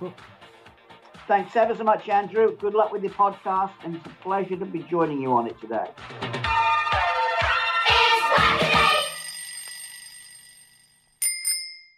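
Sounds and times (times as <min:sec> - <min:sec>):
bicycle bell ringing: 0:08.8 - 0:11.9.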